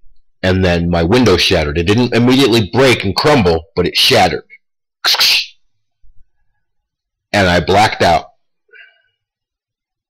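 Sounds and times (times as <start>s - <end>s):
man's hissing mouth sound: 5.0s - 5.6s.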